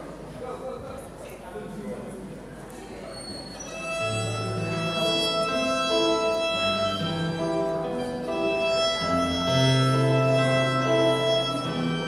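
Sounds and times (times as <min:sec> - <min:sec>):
violin melody: 0:03.6 - 0:12.0
low sustained bass notes: 0:04.0 - 0:12.0.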